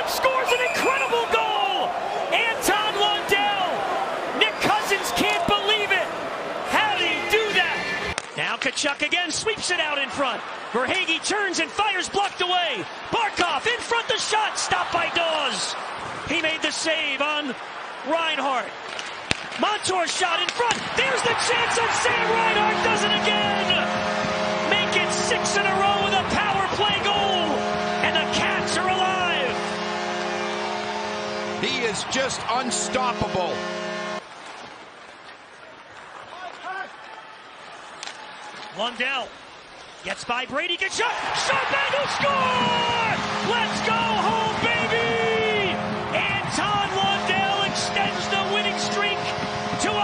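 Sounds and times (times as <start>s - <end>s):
commentator talking: 0.0s - 3.8s, 4.4s - 6.1s, 6.7s - 18.7s, 19.6s - 24.0s, 24.6s - 29.7s, 31.6s - 33.6s, 40.1s - 50.0s
arena crowd noise: 0.0s - 50.0s
hockey sticks and puck clacking: 8.1s - 9.0s, 18.8s - 29.6s, 38.0s - 38.7s, 41.0s - 50.0s.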